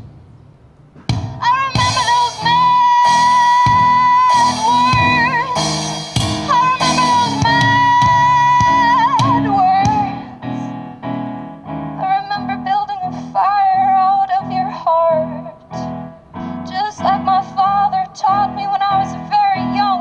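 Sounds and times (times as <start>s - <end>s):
electric keyboard chords: 1.1s - 20.0s
woman singing: 1.4s - 10.7s, 12.0s - 15.9s, 16.7s - 20.0s.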